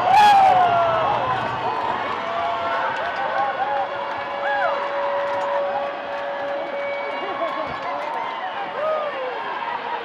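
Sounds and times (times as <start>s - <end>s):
background babble: 0.0s - 10.0s.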